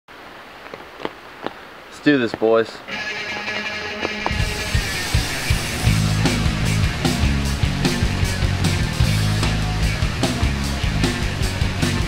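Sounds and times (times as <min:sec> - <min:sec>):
heavy rain hissing: 0:04.3 - 0:12.0.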